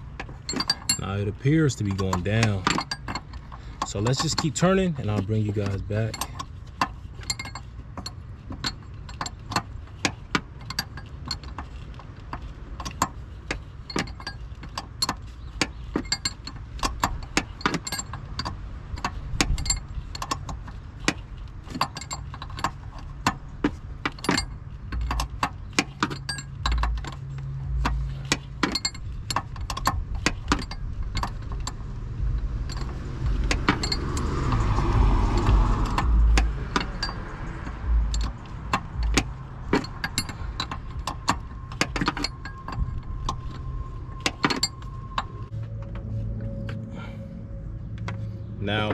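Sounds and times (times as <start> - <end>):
vehicle noise: 0.0 - 48.9.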